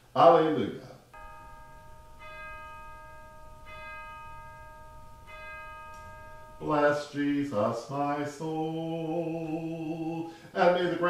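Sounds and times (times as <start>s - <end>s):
bell-like chime tones: 1.2s - 8.1s.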